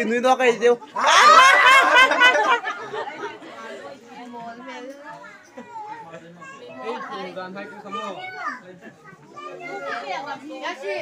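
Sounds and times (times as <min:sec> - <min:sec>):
group of people chattering: 0:00.0 - 0:11.0
people laughing: 0:00.9 - 0:04.0.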